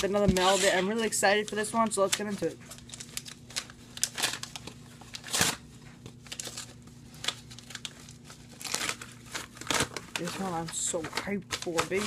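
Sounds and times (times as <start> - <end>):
wrapping crinkling and rustling: 0.0 - 12.0
wrapping ripping: 0.4 - 12.0.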